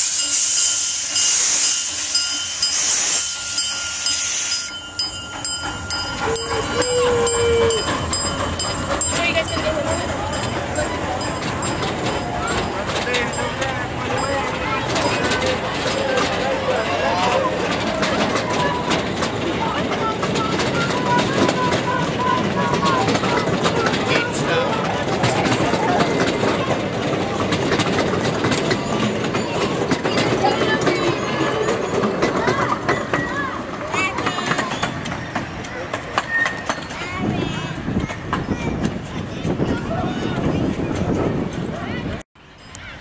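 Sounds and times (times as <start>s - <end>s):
train wheels clicking on track: 0.0s - 42.9s.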